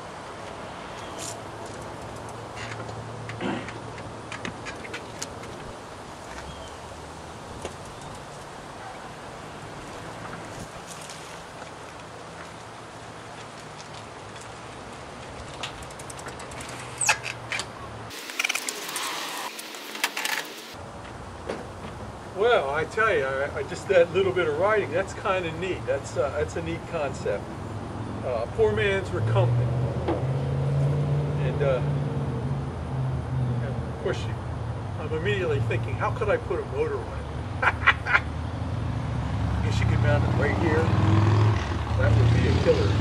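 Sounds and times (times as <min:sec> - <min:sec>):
clatters and scrapes: 0:01.2 - 0:05.7, 0:13.4 - 0:20.8
tricycle clicks and rattles: 0:13.4 - 0:17.7.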